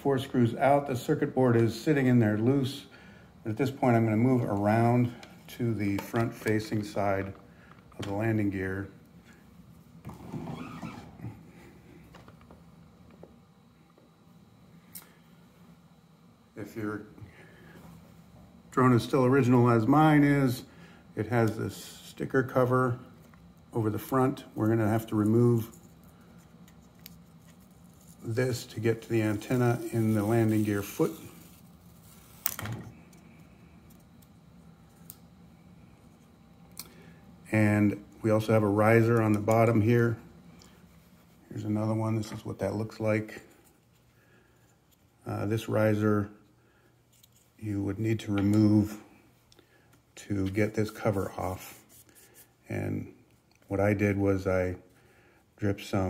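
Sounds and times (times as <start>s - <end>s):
rustling and shuffling: 23.4s - 34.2s.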